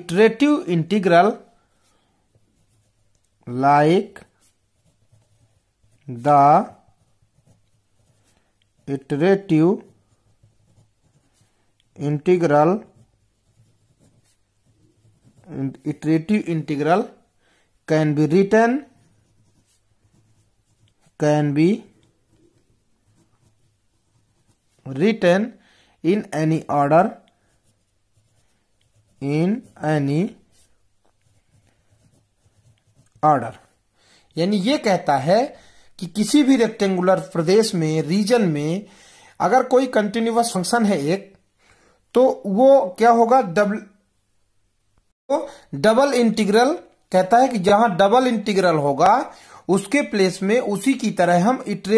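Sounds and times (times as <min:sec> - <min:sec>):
pen scratching on paper: 0:02.4 - 0:03.3, 0:04.1 - 0:17.2, 0:18.2 - 0:25.3, 0:26.5 - 0:33.8.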